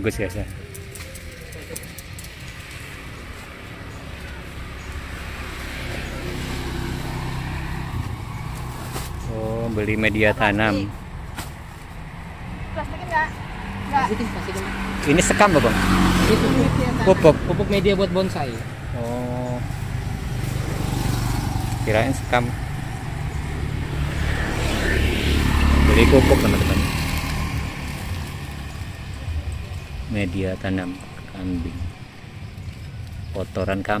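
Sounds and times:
road traffic noise: 0:00.0 - 0:34.0
vehicle engine hum: 0:00.0 - 0:34.0.

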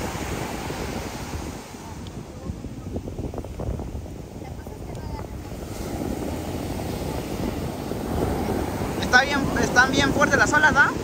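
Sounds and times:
ocean surf breaking: 0:00.0 - 0:11.0
wind buffeting microphone: 0:00.0 - 0:11.0.

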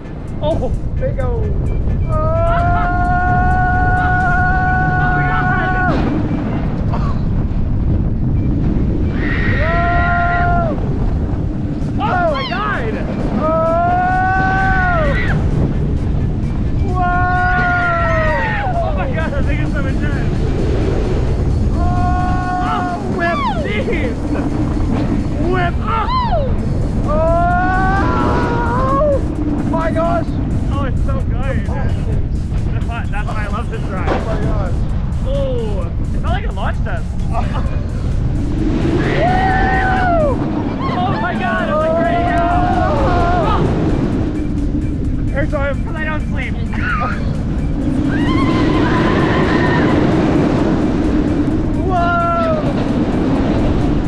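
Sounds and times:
rush of wind and track noise: 0:00.0 - 0:54.0
roller coaster riders screaming: 0:02.0 - 0:54.0.

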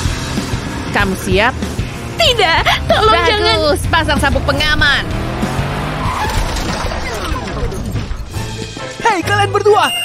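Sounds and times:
car speeding past: 0:03.4 - 0:07.7.

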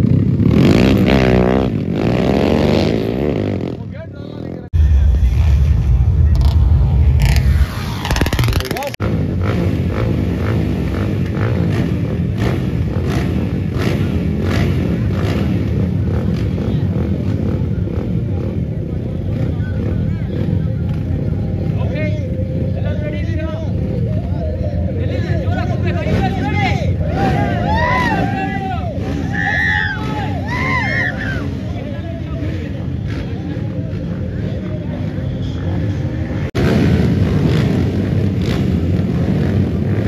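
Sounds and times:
dirt bike engines running: 0:08.1 - 0:40.0.

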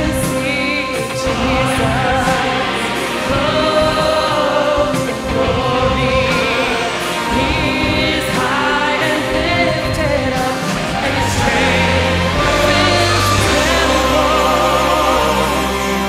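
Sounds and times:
choir singing gospel song: 0:00.0 - 0:16.0
orchestral accompaniment: 0:00.0 - 0:16.0.

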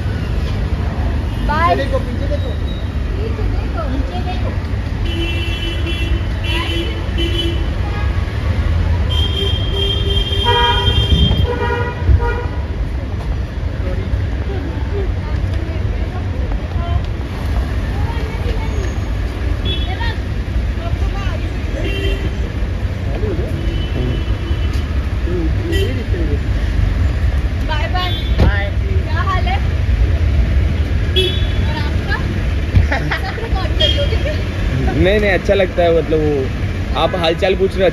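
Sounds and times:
low traffic rumble: 0:00.0 - 0:37.9
vehicle horns honking: 0:05.0 - 0:08.3, 0:09.0 - 0:12.6, 0:21.8 - 0:22.6, 0:23.5 - 0:25.0, 0:31.1 - 0:31.8, 0:33.7 - 0:35.0.

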